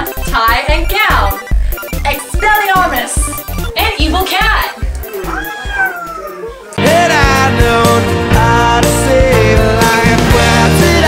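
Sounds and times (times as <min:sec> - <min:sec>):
background music with steady beat: 0:00.0 - 0:11.0
cat meowing: 0:05.0 - 0:06.8.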